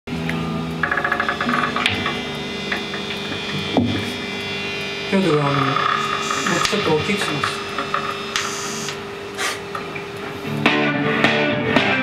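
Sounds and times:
amp hum: 0.1 - 12.0
electric guitar playing: 0.1 - 12.0.

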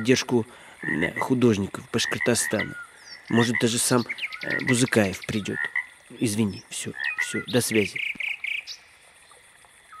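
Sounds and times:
high hum of insects: 0.0 - 10.0.

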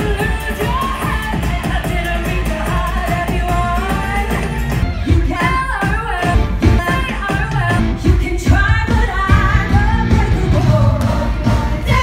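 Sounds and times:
women singing into microphones: 0.0 - 12.0.

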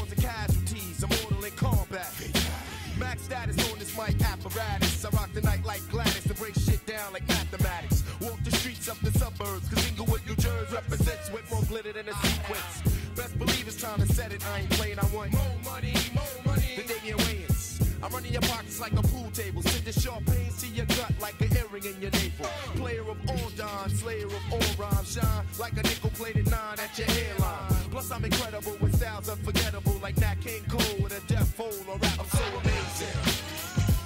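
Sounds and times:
heavy bass line: 0.0 - 34.0
rapping over a drum beat: 0.0 - 34.0.

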